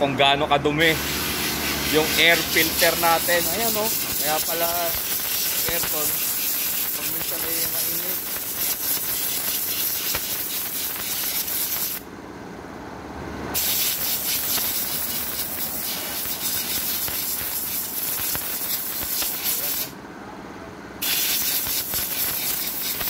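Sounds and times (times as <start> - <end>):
compressed air blow gun hissing: 1.0 - 12.0, 13.6 - 19.9, 21.0 - 23.0.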